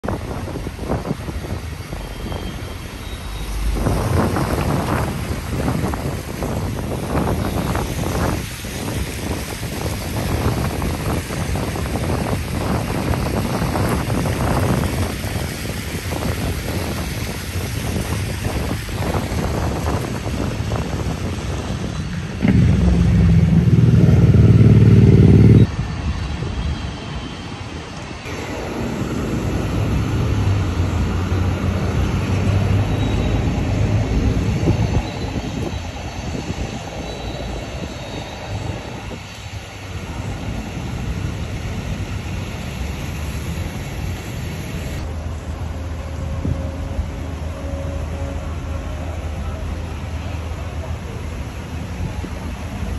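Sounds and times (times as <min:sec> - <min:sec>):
bus engine drone: 0:00.0 - 0:52.9
street traffic passing: 0:00.0 - 0:52.9
loud low engine drone: 0:00.7 - 0:15.2, 0:18.7 - 0:26.2, 0:28.2 - 0:52.9.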